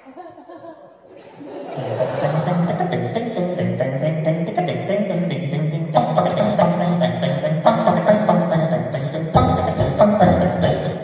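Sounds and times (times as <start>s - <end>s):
beatboxed percussion: 1.2s - 11.0s
a cappella group singing: 5.9s - 11.0s.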